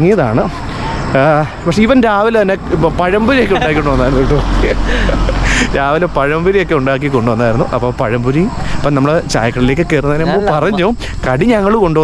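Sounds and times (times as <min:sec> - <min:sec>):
man talking: 0:00.0 - 0:12.0
steady low rumble: 0:00.0 - 0:12.0.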